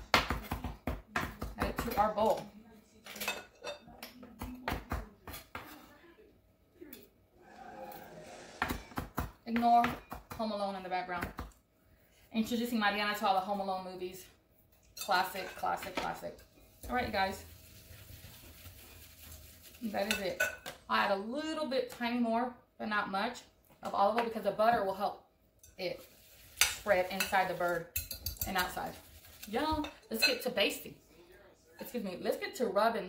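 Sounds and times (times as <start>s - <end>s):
wire whisk stirring in glass bowl: 16.5s - 20.6s, 25.6s - 30.4s.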